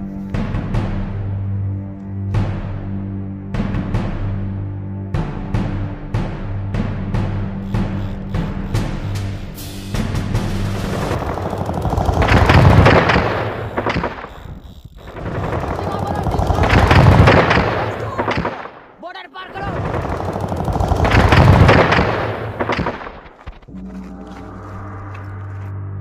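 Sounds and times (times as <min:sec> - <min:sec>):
machine-gun fire: 0:10.6 - 0:19.0, 0:19.6 - 0:23.4.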